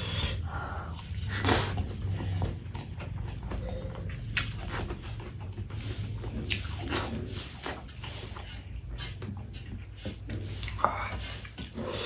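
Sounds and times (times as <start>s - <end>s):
wet chewing: 0.0s - 12.0s.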